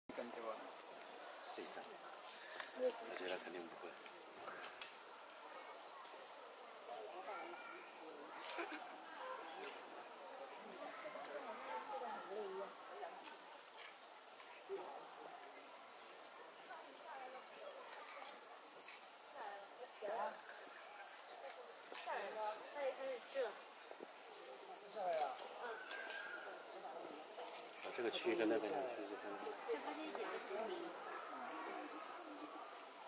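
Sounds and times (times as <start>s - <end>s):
insects droning: 0.1s - 33.0s.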